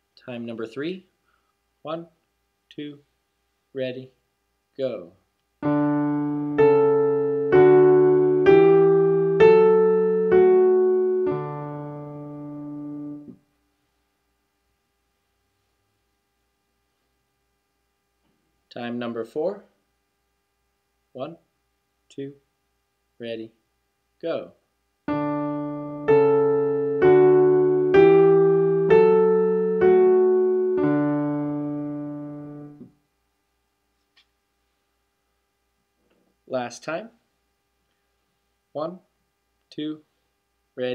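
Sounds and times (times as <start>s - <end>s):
piano chord: 5.6s - 13.4s, 25.1s - 32.9s.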